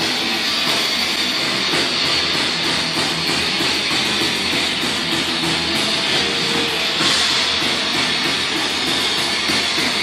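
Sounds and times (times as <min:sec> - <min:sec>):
distorted electric guitar: 0:00.0 - 0:10.0
drums: 0:00.0 - 0:10.0.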